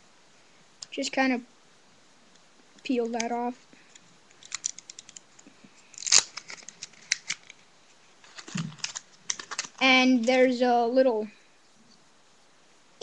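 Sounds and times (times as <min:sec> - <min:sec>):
plastic seal crackling: 0:04.3 - 0:07.6, 0:08.3 - 0:10.3
plastic tearing rip: 0:04.4 - 0:05.2, 0:05.9 - 0:07.6, 0:08.2 - 0:09.8.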